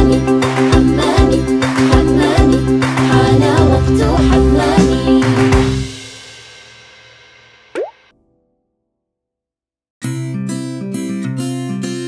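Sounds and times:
children's song music: 0:00.0 - 0:05.8
cartoon bubble pop: 0:07.8 - 0:08.0.

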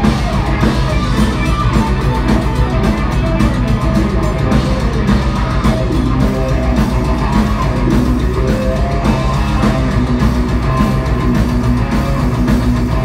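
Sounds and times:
bass guitar: 0:00.0 - 0:13.0
distorted electric guitars: 0:00.0 - 0:13.0
drum kit: 0:00.0 - 0:13.0.

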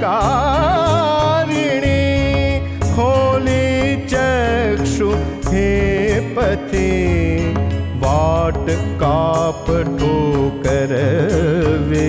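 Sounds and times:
instrumental accompaniment: 0:00.0 - 0:12.0
person singing: 0:00.0 - 0:12.0.

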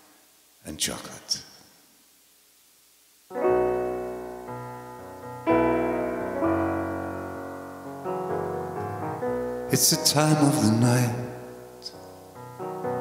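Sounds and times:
piano chords: 0:03.3 - 0:13.0.

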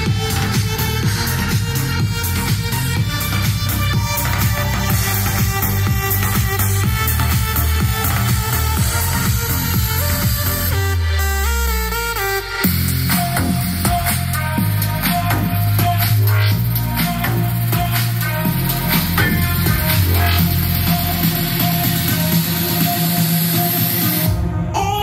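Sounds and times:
bass-heavy electronic dance music: 0:00.0 - 0:25.0.

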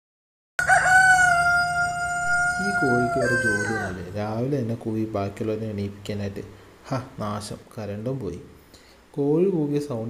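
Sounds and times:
rooster crowing: 0:00.6 - 0:04.2.

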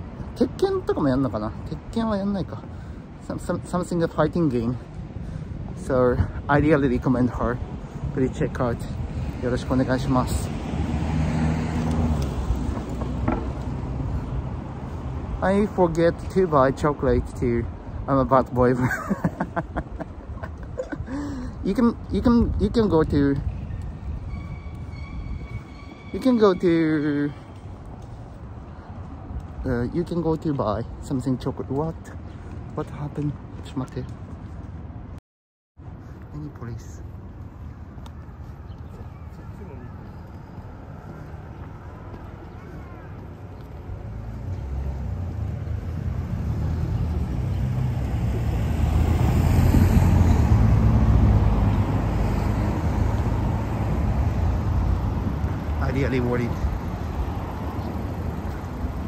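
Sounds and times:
city street traffic rumble: 0:00.0 - 0:35.2, 0:35.8 - 0:59.0.

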